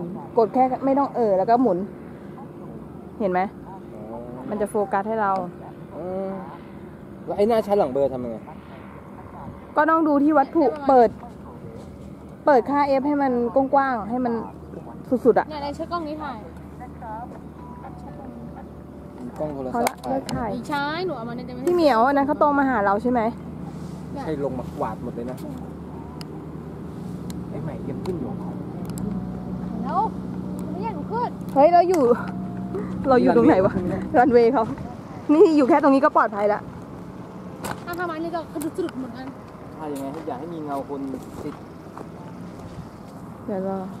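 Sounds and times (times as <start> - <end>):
people talking: 0.0 - 6.6, 7.3 - 23.4, 27.5 - 36.6, 37.8 - 41.6, 43.5 - 44.0
paramotor engine drone: 0.0 - 44.0.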